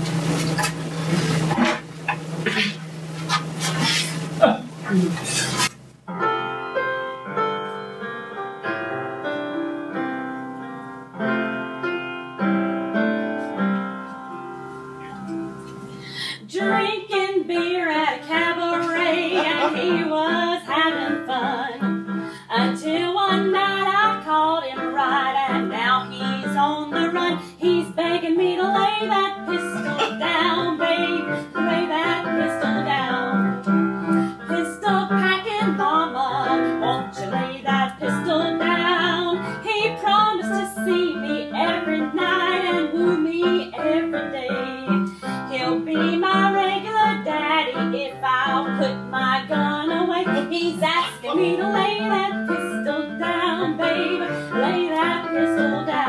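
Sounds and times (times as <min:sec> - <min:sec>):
piano: 0:00.0 - 0:56.0
woman singing: 0:16.2 - 0:56.0.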